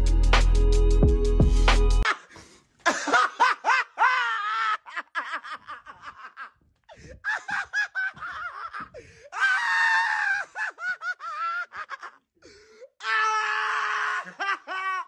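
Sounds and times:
man laughing loudly: 2.0s - 9.0s, 10.0s - 12.2s, 14.1s - 15.0s.

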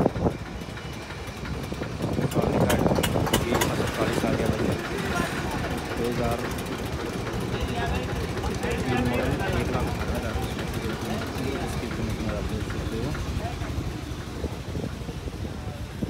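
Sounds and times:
low engine rumble: 0.0s - 16.0s
people talking: 2.0s - 16.0s.

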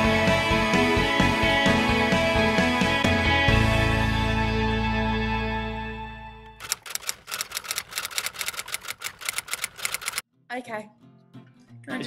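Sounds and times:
typewriter-style clicking: 6.6s - 10.2s.

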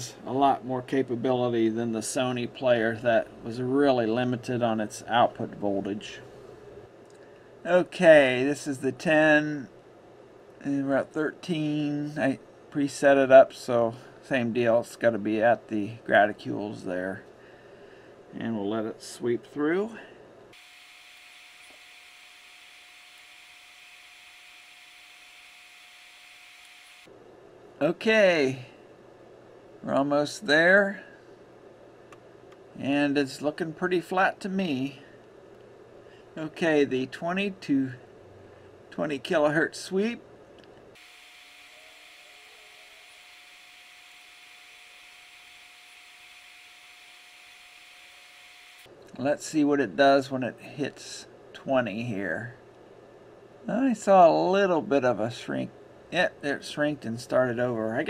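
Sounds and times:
faint hum: 0.0s - 58.0s
thin steady whine: 0.0s - 58.0s.

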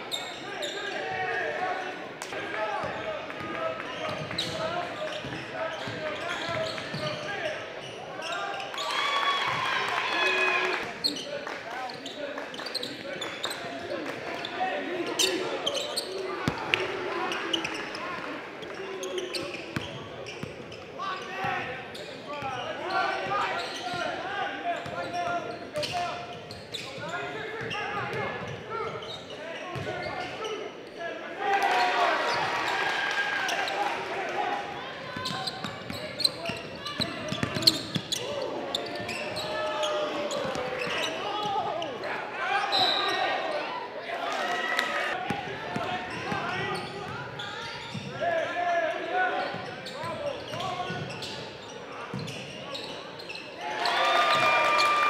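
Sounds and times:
echoing crowd and player voices: 0.0s - 55.0s.

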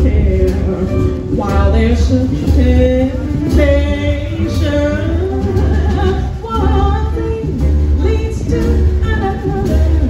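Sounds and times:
drums: 0.0s - 10.0s
piano: 0.0s - 10.0s
upright bass pulsing: 0.0s - 10.0s
woman singing jazz: 0.0s - 10.0s.

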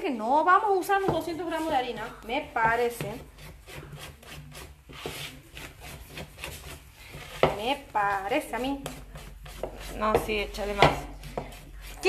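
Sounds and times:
spatula scraping batter in bowl: 0.4s - 12.0s.

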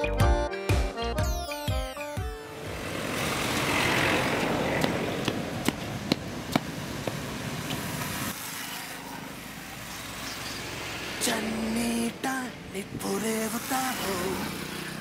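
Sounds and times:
motorbikes and cars passing: 2.4s - 15.0s.

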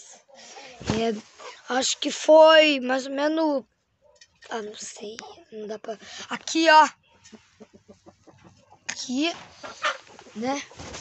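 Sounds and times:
chickens clucking: 0.0s - 1.8s, 4.0s - 6.1s, 7.0s - 11.0s.

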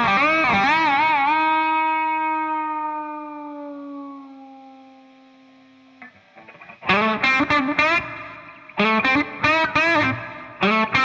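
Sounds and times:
distorted electric guitar note: 0.0s - 11.0s.

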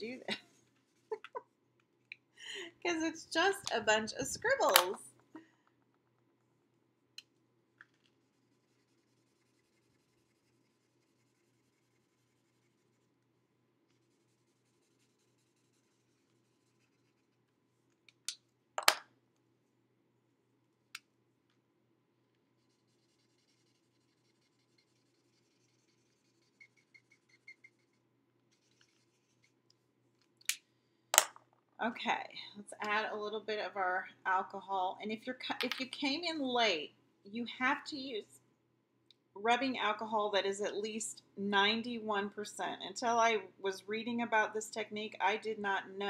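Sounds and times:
marker scribbling on paper: 8.2s - 13.2s, 13.9s - 17.4s, 22.6s - 29.6s.

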